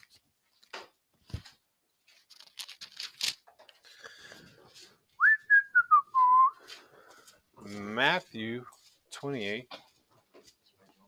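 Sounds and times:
pages rustling: 0:00.0 - 0:05.1
person whistling a short tune: 0:05.2 - 0:06.6.

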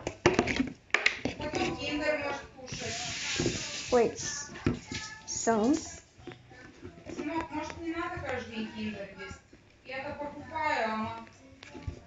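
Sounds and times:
steady hiss: 0:02.7 - 0:05.9.

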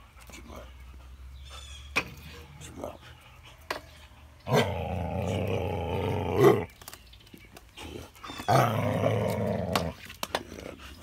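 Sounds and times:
dog growling low: 0:04.4 - 0:06.7, 0:07.8 - 0:11.0.

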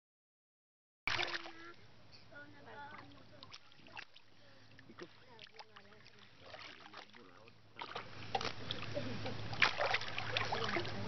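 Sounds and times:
water sloshing and splashing: 0:01.1 - 0:01.9, 0:02.5 - 0:11.0.

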